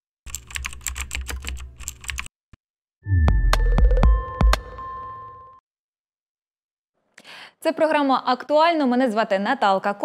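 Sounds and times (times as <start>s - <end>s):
keyboard typing clicks: 0.3s - 2.3s.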